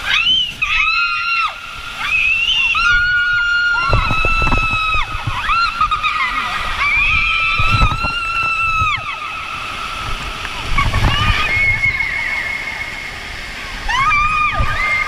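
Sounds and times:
riders screaming: 0.0 - 9.4
water rushing and sloshing: 0.0 - 15.0.

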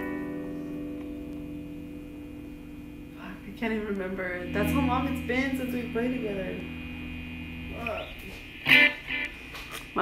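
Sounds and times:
distorted guitar strum: 0.0 - 3.2, 4.2 - 10.0
guitar amp hum: 0.0 - 10.0.

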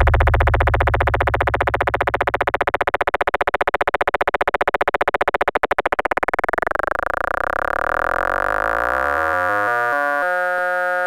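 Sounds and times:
stuttering synth tones: 0.0 - 11.0.

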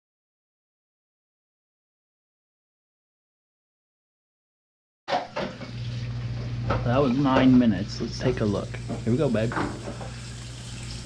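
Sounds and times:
oven humming: 5.1 - 11.0.

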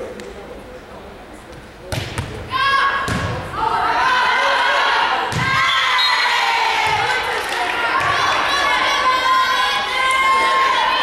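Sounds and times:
crowd shouting and cheering: 2.4 - 11.0.

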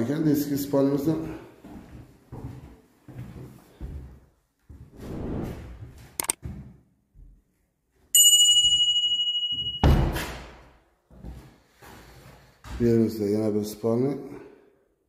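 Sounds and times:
bell chime: 8.2 - 10.1.

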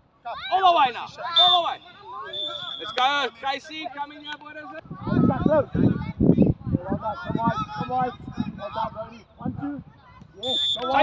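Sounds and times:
whistle blast: 1.3 - 3.2, 10.4 - 11.0.

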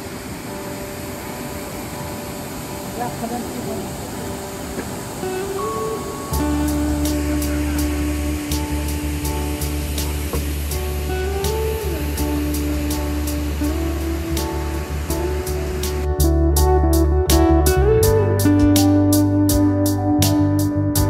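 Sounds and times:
instrumental background music: 0.0 - 21.0.

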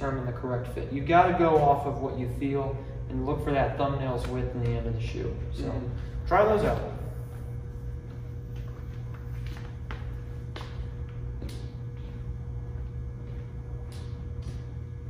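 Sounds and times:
steady low hum: 0.0 - 15.0
running footsteps on concrete: 7.3 - 15.0.

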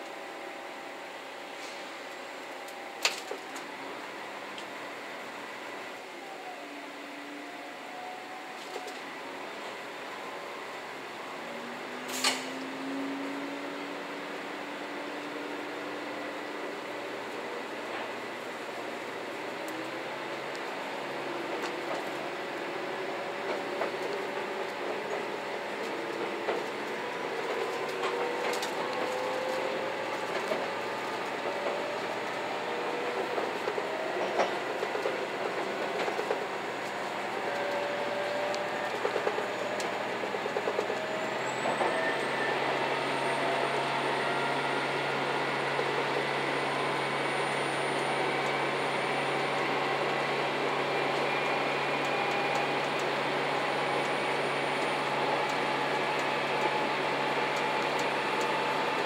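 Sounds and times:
diesel train engine whine: 0.0 - 59.0
wheels clicking over rail joints: 23.3 - 42.0.

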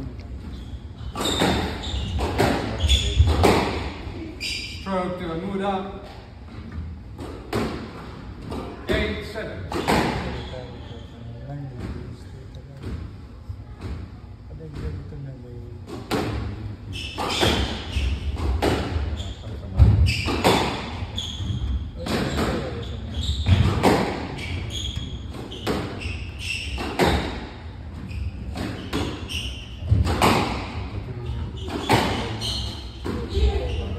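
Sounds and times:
squash ball knocks with echo: 1.4 - 4.0, 19.8 - 21.0, 23.5 - 24.3, 26.8 - 27.5, 29.8 - 30.9.

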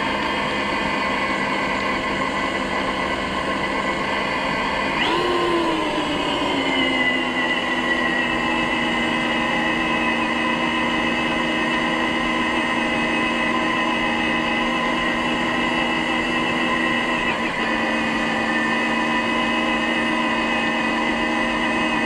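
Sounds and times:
rc car electric motor whining: 0.0 - 22.0.

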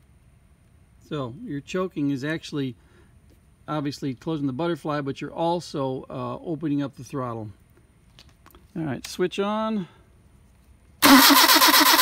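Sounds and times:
car engine starting and running: 11.0 - 12.0.

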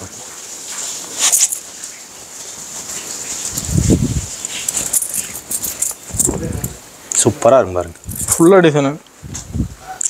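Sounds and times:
fabric rustling and crackling: 0.4 - 8.7.

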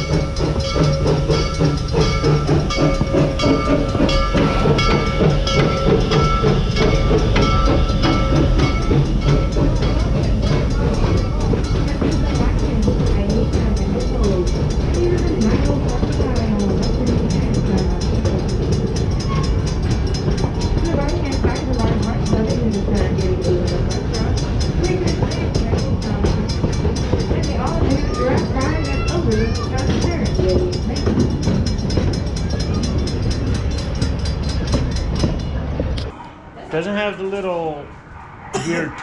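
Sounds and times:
fast even ticking: 0.0 - 36.0
passengers' voices: 0.0 - 39.0
train cars rumbling: 0.0 - 39.0.

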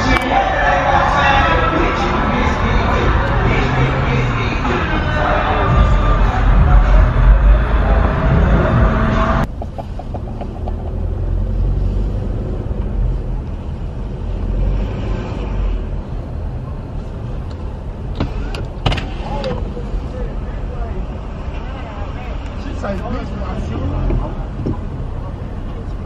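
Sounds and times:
music: 0.0 - 9.5
car driving inside cabin rumble: 0.0 - 26.0.

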